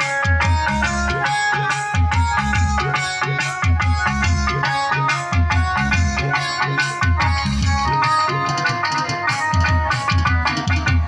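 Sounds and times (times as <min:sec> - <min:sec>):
plucked strings melody: 0:00.0 - 0:11.0
steady drum beat: 0:00.0 - 0:11.0.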